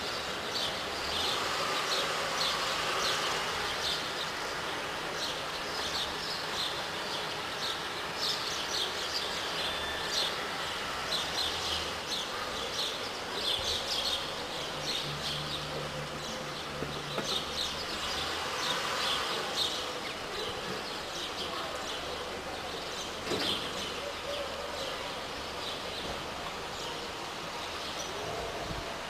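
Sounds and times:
small birds chirping: 0.0s - 28.4s.

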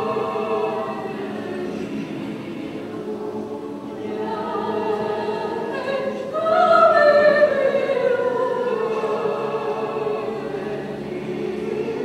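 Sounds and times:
choir singing slow chant: 0.0s - 12.0s.

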